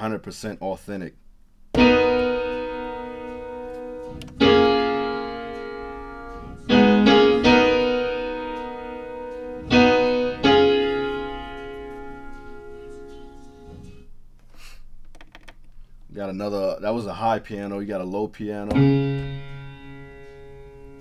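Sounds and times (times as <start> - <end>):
acoustic piano chords: 1.7 - 14.1, 18.6 - 21.0.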